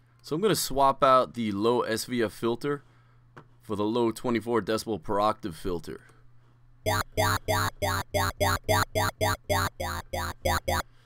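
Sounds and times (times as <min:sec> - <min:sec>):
talking wobble bass: 0:06.9 - 0:10.8.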